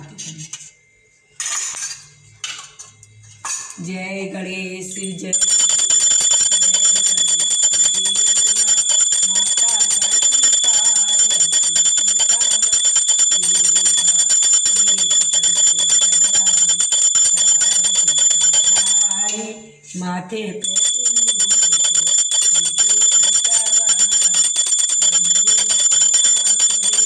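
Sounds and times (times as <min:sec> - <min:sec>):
hand bell ringing rapidly: 0:04.9 - 0:19.6, 0:20.6 - 0:27.0.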